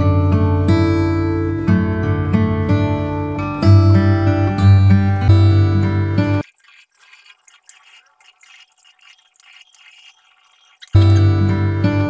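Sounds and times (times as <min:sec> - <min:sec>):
water splashing on face: 0:06.2 - 0:11.5
tap water running into sink: 0:06.2 - 0:11.6.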